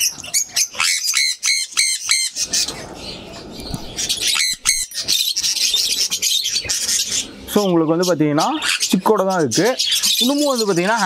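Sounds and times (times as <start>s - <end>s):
parrots chirping and calling: 0.0s - 11.0s
shrill repeated parrot calls: 0.6s - 2.6s, 4.2s - 5.6s.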